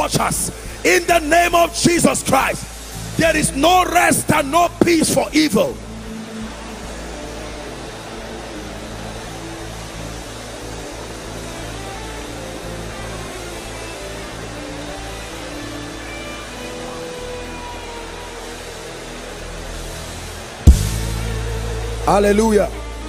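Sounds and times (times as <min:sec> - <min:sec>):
steady hiss: 0:00.0 - 0:23.0
slow music of held chords: 0:05.6 - 0:23.0.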